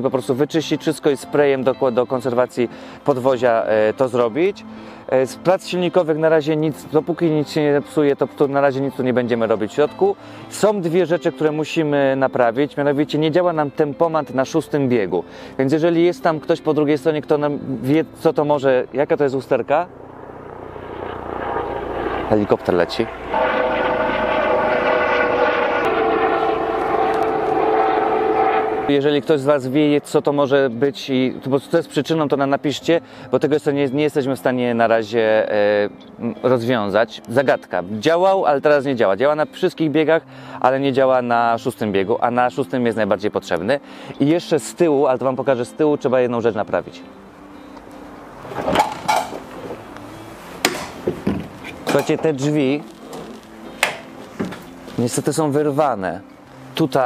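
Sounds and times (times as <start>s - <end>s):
helicopter rotor drone: 19.6s - 29.0s.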